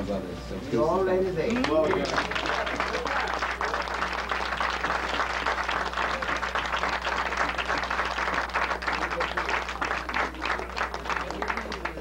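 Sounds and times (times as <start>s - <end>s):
audience applauding: 1.5s - 12.0s.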